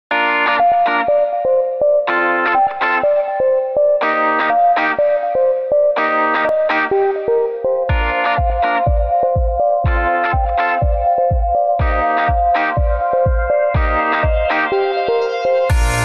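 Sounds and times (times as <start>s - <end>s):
theme music with chords: 0.1s - 16.0s.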